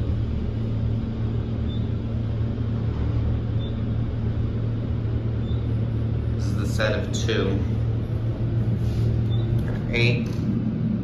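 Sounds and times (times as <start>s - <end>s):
elevator hum and rumble: 0.0s - 11.0s.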